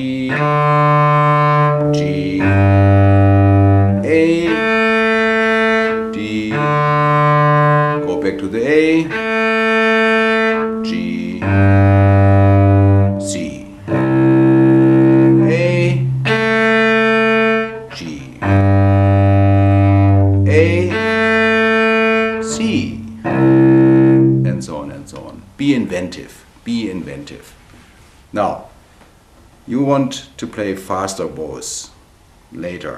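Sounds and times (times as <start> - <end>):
man's voice: 0.0 - 0.5, 2.0 - 2.8, 4.0 - 4.7, 6.1 - 6.9, 8.0 - 9.2, 10.9 - 11.7, 13.2 - 13.8, 15.3 - 16.2, 17.9 - 18.6, 20.4 - 21.3, 22.4 - 23.4, 24.4 - 27.5, 28.4 - 28.7, 29.7 - 32.0, 32.6 - 32.9
cello bowed notes: 0.0 - 25.5.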